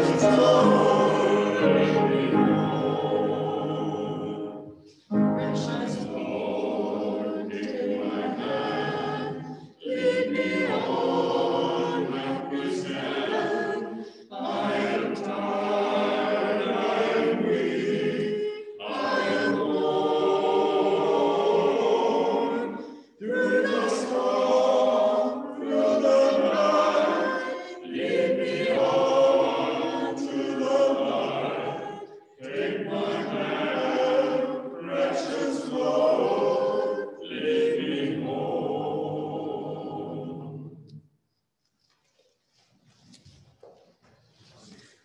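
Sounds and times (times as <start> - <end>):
group singing a hymn: 0.0 - 41.0.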